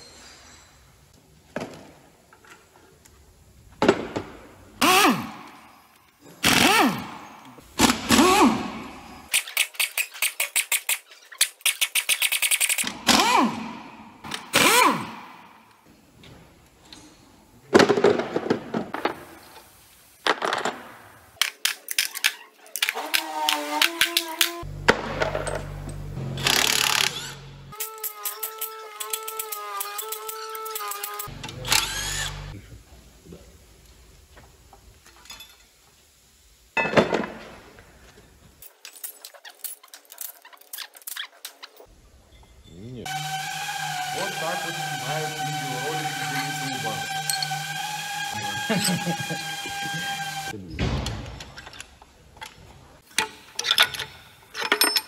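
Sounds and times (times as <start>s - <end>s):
motor whine: 31.3s - 32.6s, 43.1s - 50.6s
steel engine parts clanking: 44.2s - 50.5s, 51.4s - 55.0s.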